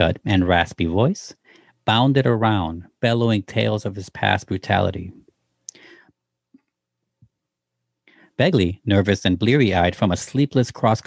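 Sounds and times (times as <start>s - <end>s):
mouth click: 5.7s - 5.9s.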